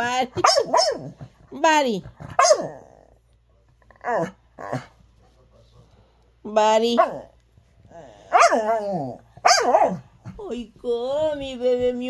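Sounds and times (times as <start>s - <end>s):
dog barking: 0.4s - 1.2s, 2.3s - 2.8s, 7.0s - 7.3s, 8.3s - 8.7s, 9.4s - 10.1s.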